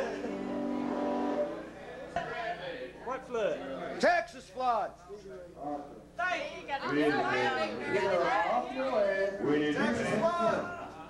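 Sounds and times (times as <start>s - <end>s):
people talking: 1.7s - 11.0s.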